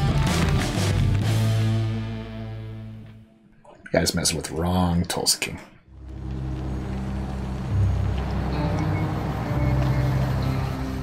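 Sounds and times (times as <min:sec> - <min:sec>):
low droning tense score: 0:05.9 - 0:11.0.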